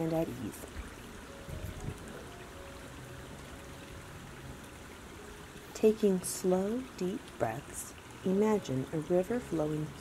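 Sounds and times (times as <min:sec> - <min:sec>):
creek flowing over stones: 0:00.0 - 0:10.0
soft music with sustained notes: 0:00.0 - 0:10.0.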